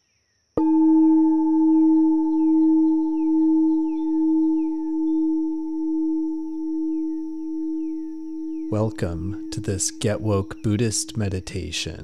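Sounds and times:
singing bowl ringing: 0:00.6 - 0:11.5.

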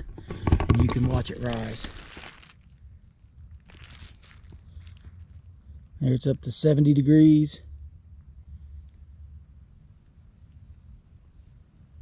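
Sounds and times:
soft crackles: 0:00.8 - 0:05.5
dry leaves rustling: 0:00.9 - 0:02.9, 0:03.5 - 0:05.4
steady low rumble: 0:00.9 - 0:12.0.

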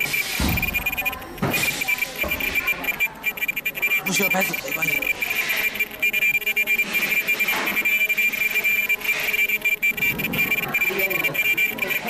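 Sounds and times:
welding machine high-pitched whine: 0:00.0 - 0:12.0.

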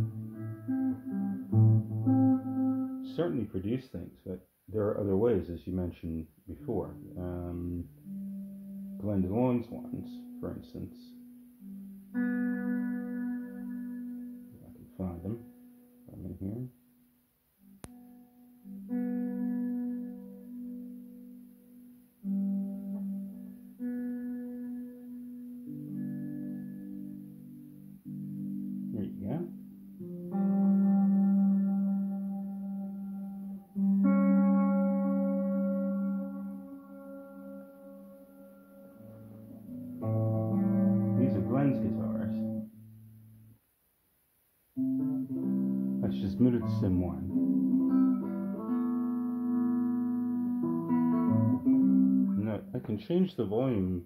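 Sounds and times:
electric guitar strummed chords: 0:00.0 - 0:03.6, 0:06.5 - 0:16.9, 0:17.6 - 0:43.6, 0:44.8 - 0:54.0.

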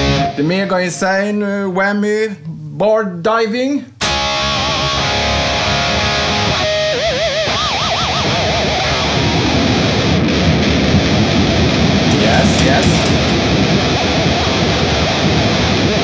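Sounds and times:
distorted electric guitar with tremolo bar: 0:00.0 - 0:00.8, 0:04.0 - 0:16.0.

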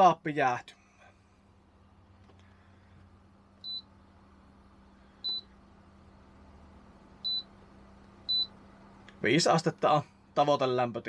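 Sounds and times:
compressor humming: 0:00.8 - 0:10.6
short high beeps: 0:05.2 - 0:05.5.

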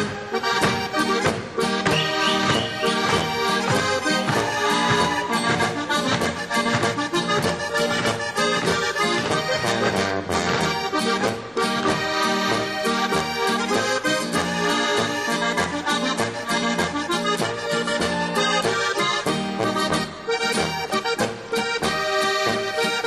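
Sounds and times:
folk band playing dance tune: 0:00.0 - 0:23.0.

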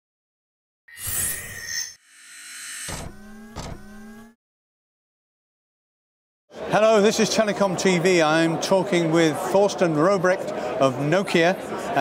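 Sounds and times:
synthesized drone: 0:01.0 - 0:04.4.

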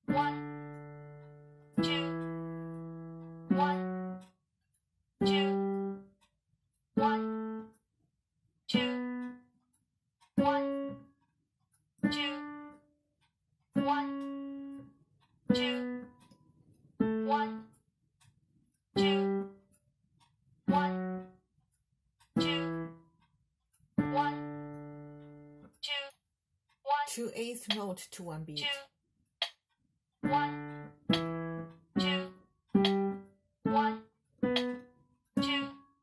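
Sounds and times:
piano playing a slow scale: 0:00.0 - 0:04.3, 0:05.2 - 0:06.3, 0:07.0 - 0:07.8, 0:08.7 - 0:09.6, 0:10.4 - 0:11.1, 0:12.0 - 0:12.9, 0:13.7 - 0:16.4, 0:17.0 - 0:17.8, 0:19.0 - 0:19.7, 0:20.6 - 0:21.4, 0:22.3 - 0:23.2, 0:24.0 - 0:25.6, 0:30.2 - 0:35.8.

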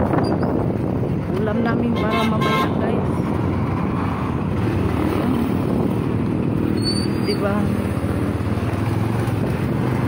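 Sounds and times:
vehicle engine rumble: 0:00.0 - 0:10.0
wind noise on microphone: 0:00.0 - 0:10.0.

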